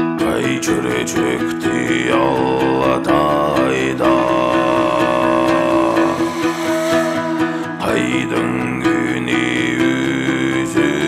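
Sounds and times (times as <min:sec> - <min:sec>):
instrumental backing: 0:00.0 - 0:11.0
throat singing drone: 0:00.2 - 0:11.0.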